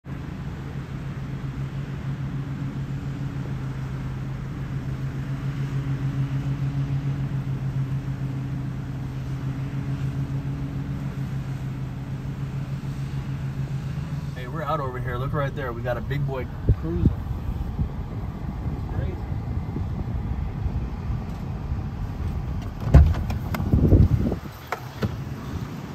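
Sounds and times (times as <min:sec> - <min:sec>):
vehicle engine idling: 0:00.0 - 0:25.9.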